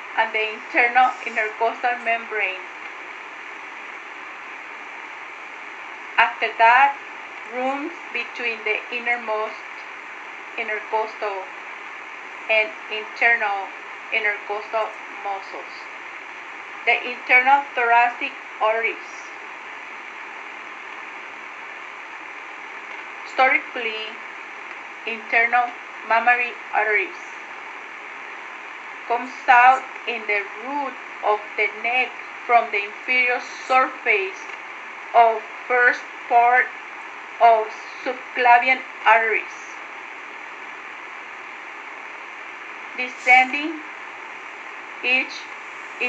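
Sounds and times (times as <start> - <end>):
steady background hiss: 0.0 - 46.0.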